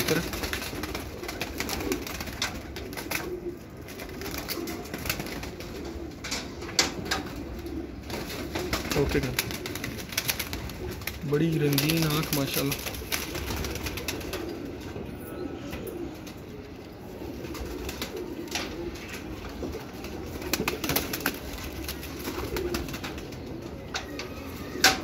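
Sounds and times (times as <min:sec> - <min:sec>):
pigeons cooing: 0:00.0 - 0:25.0.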